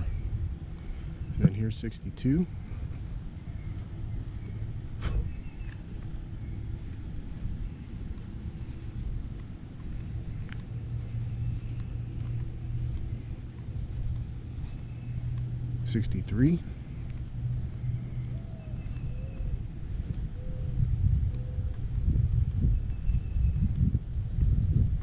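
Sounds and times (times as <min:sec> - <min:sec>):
vehicle engine and tyre hum: 0:00.0 - 0:25.0.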